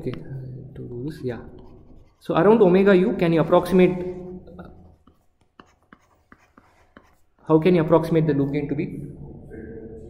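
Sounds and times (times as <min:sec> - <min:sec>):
stylus tapping on pen tablet: 0:04.8 - 0:07.4.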